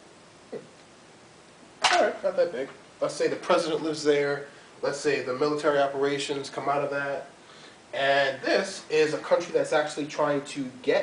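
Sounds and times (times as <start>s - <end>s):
faint steady hiss: 0.0s - 11.0s
man speaking loudly: 1.8s - 7.3s, 8.0s - 11.0s.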